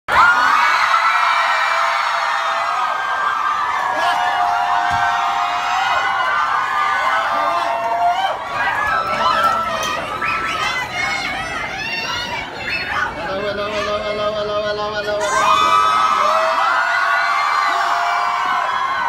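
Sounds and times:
crowd cheering and screaming: 0.1s - 13.0s, 15.2s - 19.0s.

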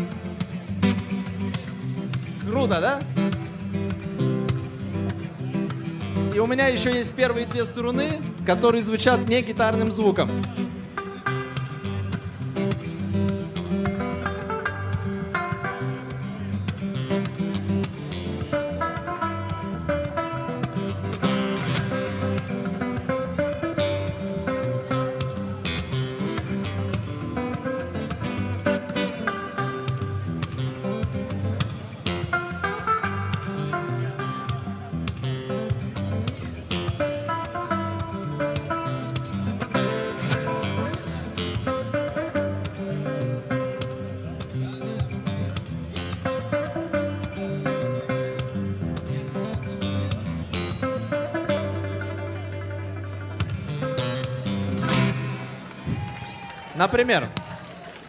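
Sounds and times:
fingerstyle acoustic guitar: 0.0s - 55.9s.

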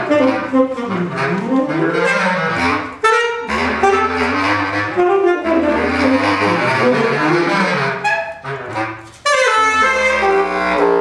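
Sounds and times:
saxophone and bass clarinet jazz: 0.0s - 11.0s.

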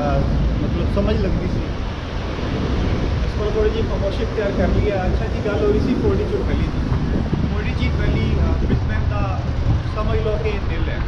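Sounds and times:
people talking: 0.0s - 1.7s, 3.2s - 6.8s, 7.4s - 11.0s
traffic rumble from passing cars: 0.0s - 11.0s.

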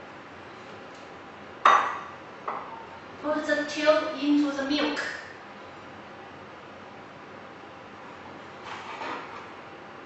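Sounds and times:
faint steady background noise: 0.0s - 8.6s.

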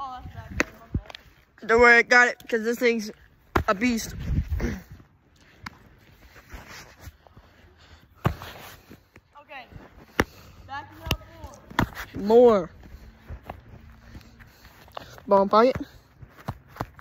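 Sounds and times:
ball smacking into leather glove: 10.0s - 10.4s, 11.0s - 12.2s.

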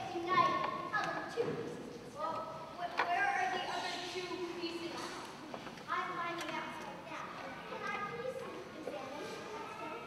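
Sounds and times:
children speaking in a large hall: 0.0s - 10.0s.

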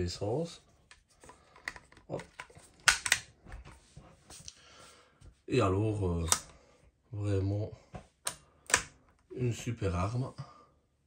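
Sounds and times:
magazine seating clicks: 1.6s - 3.3s.

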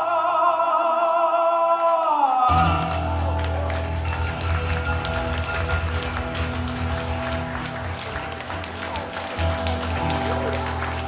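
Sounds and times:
acoustic guitar strumming chords: 2.5s - 8.7s.

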